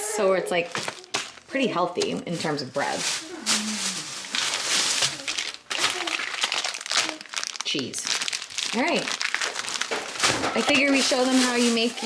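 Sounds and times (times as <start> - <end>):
plastic bag crinkling: 0.5 - 12.0.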